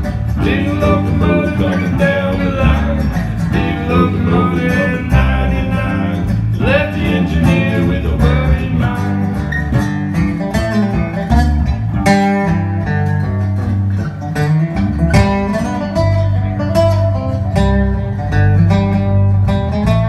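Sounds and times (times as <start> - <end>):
acoustic guitar picking: 0.0 - 20.0
bass line: 0.0 - 20.0.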